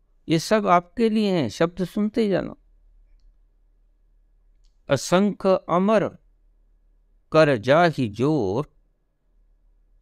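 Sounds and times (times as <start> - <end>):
faint low hum: 0.0 - 10.0
man speaking: 0.2 - 2.7, 4.8 - 6.3, 7.3 - 8.8.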